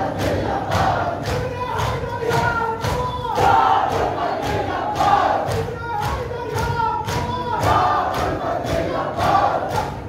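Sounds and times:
mourners chanting together: 0:00.0 - 0:10.0.

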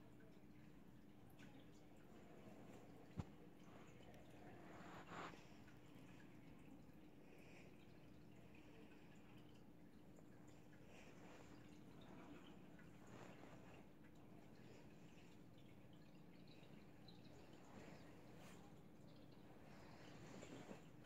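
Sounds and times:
faint steady hum: 0:00.0 - 0:21.0
faint soft rustles: 0:01.4 - 0:21.0.

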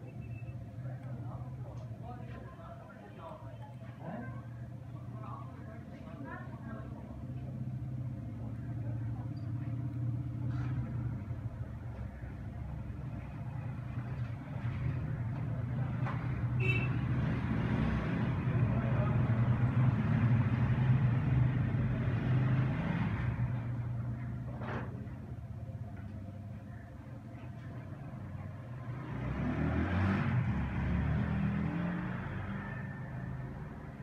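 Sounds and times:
traffic going by: 0:00.0 - 0:34.0.

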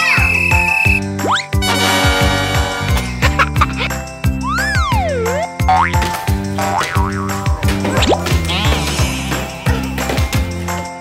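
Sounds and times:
cartoon sliding whistle effect: 0:00.0 - 0:01.4
upbeat children's music with drums: 0:00.0 - 0:11.0.

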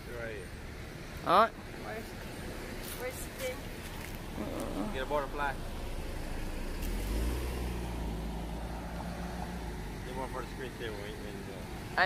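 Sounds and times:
vehicle engine rumble passing: 0:01.7 - 0:12.0
faint voices: 0:04.3 - 0:05.6.

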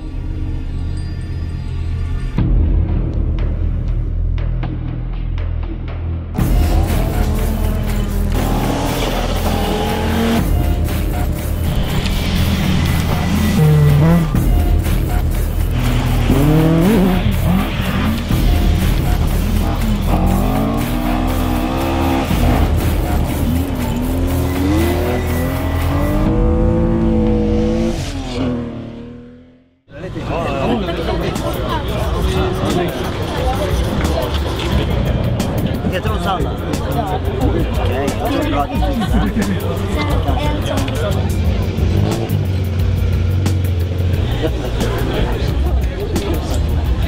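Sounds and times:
background music with bass: 0:00.0 - 0:47.0
rally car engines revving: 0:06.4 - 0:47.0.

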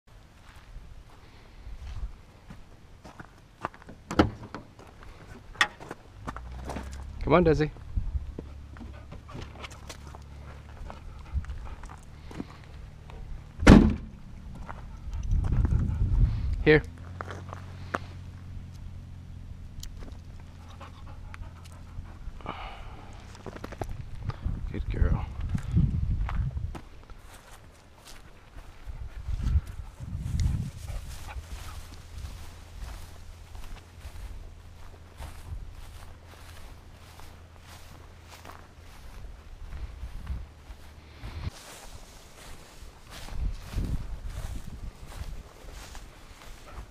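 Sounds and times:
wind rumble on microphone: 0:00.7 - 0:02.3, 0:07.7 - 0:08.5, 0:10.8 - 0:11.9, 0:13.2 - 0:16.8, 0:22.0 - 0:27.4, 0:28.5 - 0:46.9
tailgate latch clicks and clunks: 0:04.0 - 0:04.7
heavy footfall thumps: 0:13.6 - 0:14.1.

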